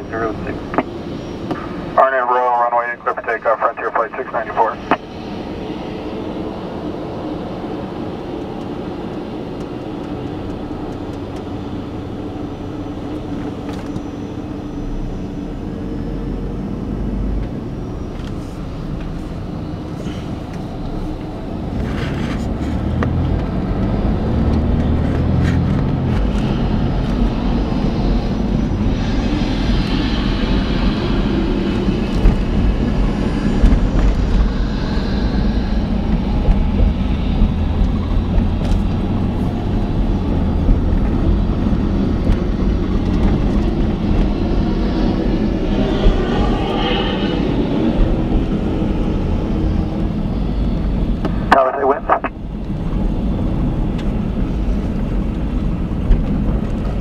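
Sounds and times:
air traffic control radio voices: 0.0s - 0.9s, 1.9s - 5.1s, 51.3s - 52.8s
vehicle engine and road noise: 0.0s - 57.0s.

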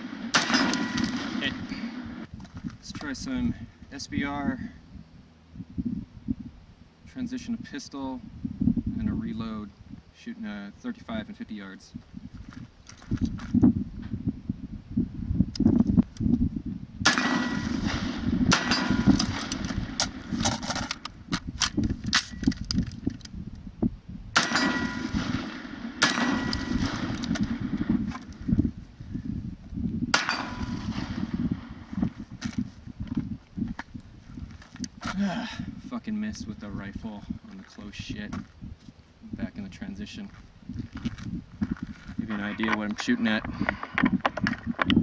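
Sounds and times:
rifle gunshots: 0.0s - 2.3s, 17.0s - 20.9s, 24.4s - 28.0s, 30.1s - 31.9s
handgun shots: 0.1s - 2.2s, 17.1s - 20.6s, 24.4s - 27.6s, 30.2s - 31.3s.

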